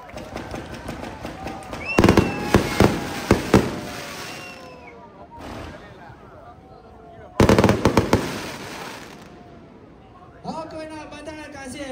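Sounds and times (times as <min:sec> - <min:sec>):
firework crackling: 0:00.1 - 0:06.0, 0:07.4 - 0:09.5
firework bang: 0:00.4 - 0:04.5, 0:07.4 - 0:09.2.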